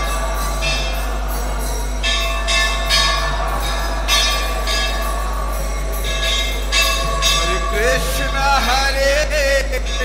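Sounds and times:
hand cymbals ringing: 0:00.0 - 0:10.0.

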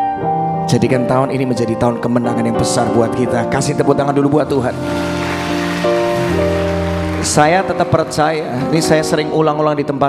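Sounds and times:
background music held chords: 0:00.0 - 0:10.0
congregation applauding: 0:04.6 - 0:09.2.

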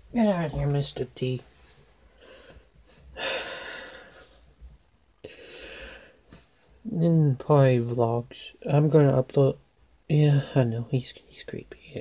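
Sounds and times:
person breathing in: 0:02.2 - 0:04.5.

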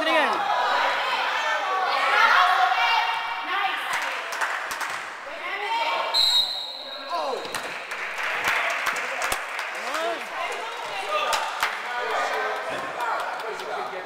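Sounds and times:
voices shouting: 0:00.1 - 0:03.9.

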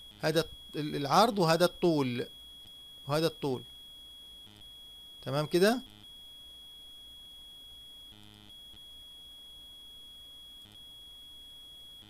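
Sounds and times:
faint high-pitched whine: 0:00.0 - 0:12.0.

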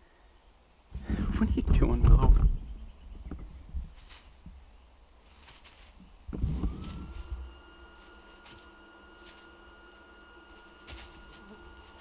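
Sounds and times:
footsteps in dry leaves: 0:03.8 - 0:12.0.

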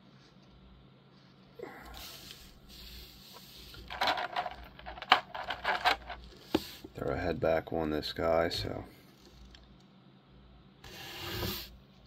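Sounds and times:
plastic parts rustling: 0:03.4 - 0:06.8
plastic pieces clicking together: 0:03.8 - 0:06.3.

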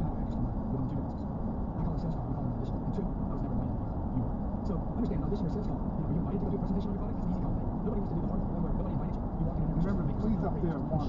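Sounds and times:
road and tyre noise in car: 0:00.0 - 0:11.0.

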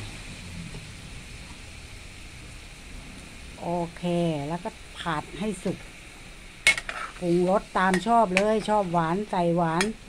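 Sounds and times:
pork sizzling in a pan: 0:00.0 - 0:10.0.

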